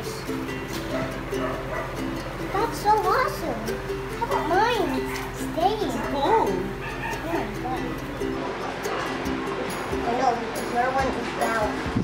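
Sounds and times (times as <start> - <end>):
plucked string music: 0.0 - 12.0
child's voice: 2.4 - 8.1, 10.0 - 11.8.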